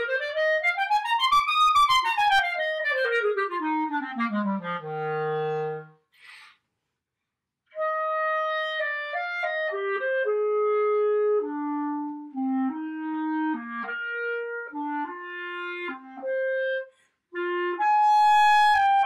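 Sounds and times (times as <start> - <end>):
solo clarinet melody: 0.0 - 6.1, 7.7 - 19.0.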